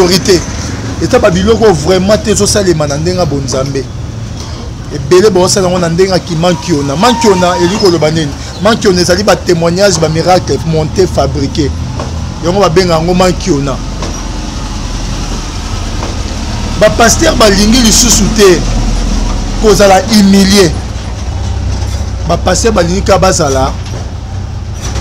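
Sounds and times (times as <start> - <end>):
men's voices: 0.0 - 3.9, 4.9 - 11.7, 16.8 - 18.8
low engine rumble: 0.0 - 25.0.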